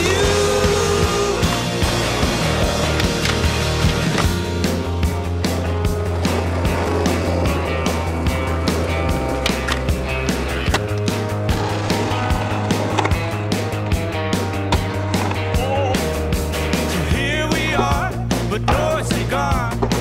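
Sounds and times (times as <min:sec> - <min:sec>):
music with bass and beat: 0:00.0 - 0:20.0
skateboard wheels rolling: 0:00.8 - 0:15.7
skateboard clacks: 0:02.5 - 0:04.4.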